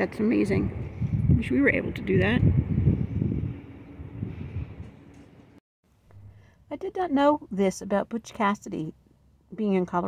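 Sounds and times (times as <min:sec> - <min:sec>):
wind buffeting microphone: 0:00.0 - 0:05.6.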